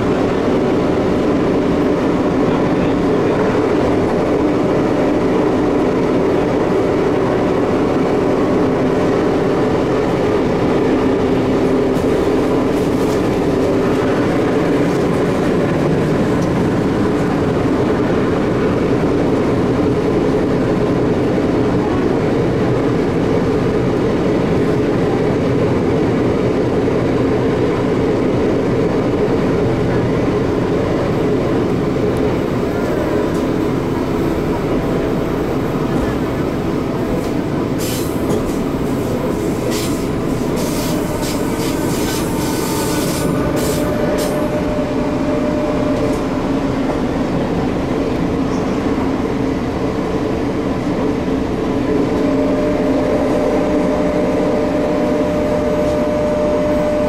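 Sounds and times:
train motor hum: 0:00.0 - 0:57.0
train wheels rumbling on rail: 0:00.0 - 0:57.0.

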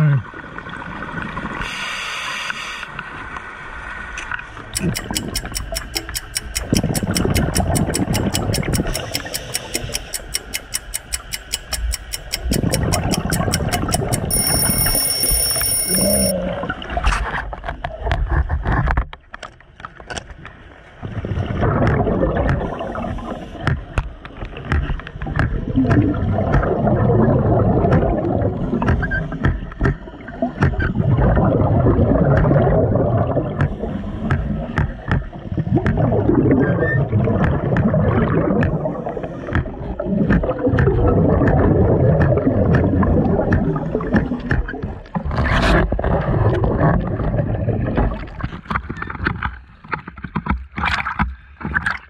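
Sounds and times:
regulator bubbles underwater: 0:02.9 - 0:18.3, 0:21.0 - 0:49.1
sharp clicks: 0:04.7 - 0:16.3.

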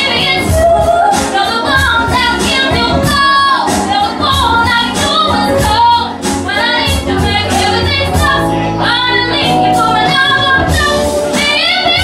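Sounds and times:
backing music: 0:00.0 - 0:12.0
woman singing into a microphone: 0:00.0 - 0:12.0.

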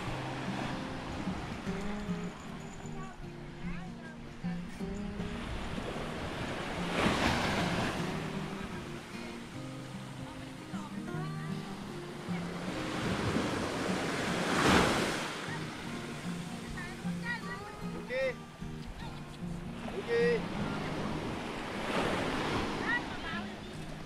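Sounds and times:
small waves washing onto shore: 0:00.0 - 0:24.0.

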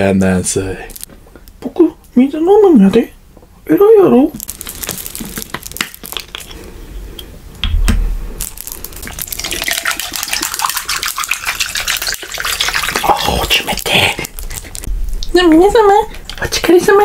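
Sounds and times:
plastic water bottle crackling: 0:04.4 - 0:06.7, 0:08.4 - 0:16.4
water pouring into cup of ice: 0:08.5 - 0:14.1.

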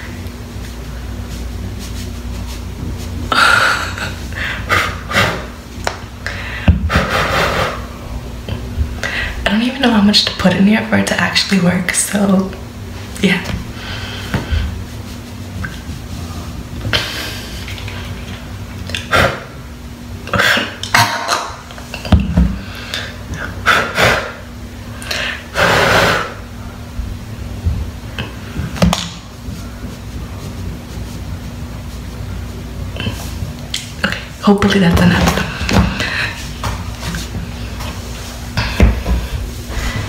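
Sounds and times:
faint steady hum: 0:00.0 - 0:40.0.

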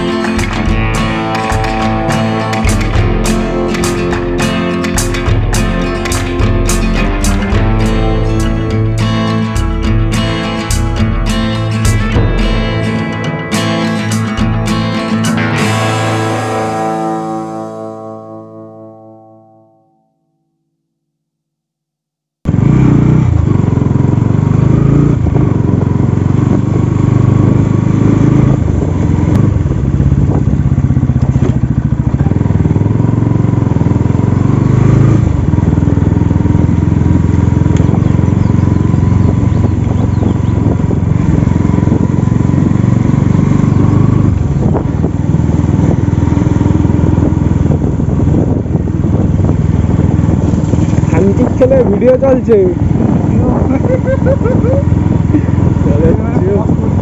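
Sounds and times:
motorcycle engine running: 0:00.0 - 0:18.9, 0:22.5 - 0:57.0.

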